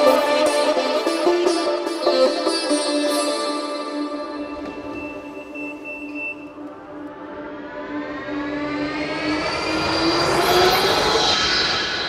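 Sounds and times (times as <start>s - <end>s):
synthesized riser: 4.2s - 12.0s.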